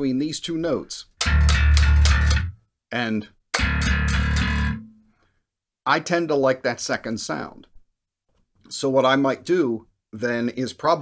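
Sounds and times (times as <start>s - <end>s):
bass guitar low note: 1.2s - 2.5s, 3.6s - 4.9s.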